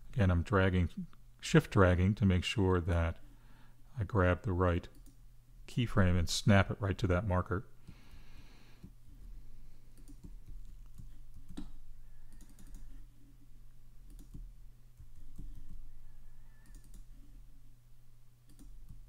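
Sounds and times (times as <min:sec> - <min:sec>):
low electrical hum: 0:00.0 - 0:19.0
computer mouse clicks: 0:04.9 - 0:05.2, 0:09.9 - 0:12.9, 0:14.0 - 0:15.8, 0:16.5 - 0:17.1, 0:18.5 - 0:19.0
keyboard keystrokes: 0:14.1 - 0:15.8.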